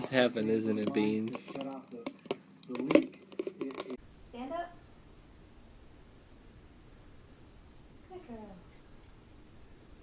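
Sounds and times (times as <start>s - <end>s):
person speaking: 0.0s - 4.0s
plastic jar clicks and crinkles: 0.0s - 4.0s.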